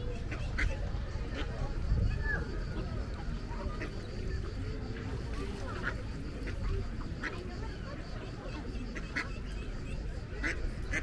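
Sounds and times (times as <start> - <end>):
ducks quacking: 0.0 - 11.0.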